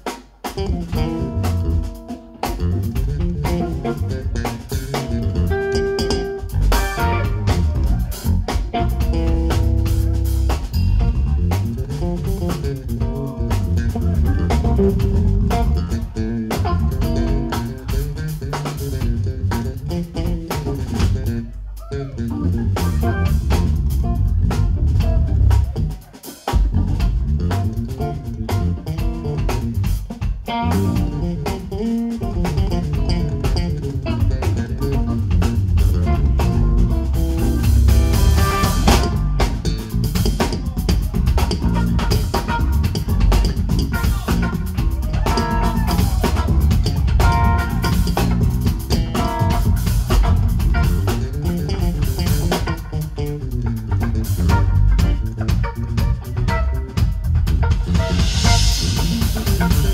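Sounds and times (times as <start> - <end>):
drum kit: 0.0 - 59.9
electric bass guitar solo: 0.4 - 59.9.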